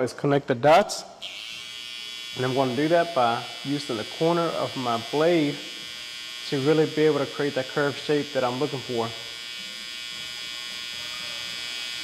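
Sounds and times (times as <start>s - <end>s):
hair trimmer buzzing: 1.2s - 12.0s.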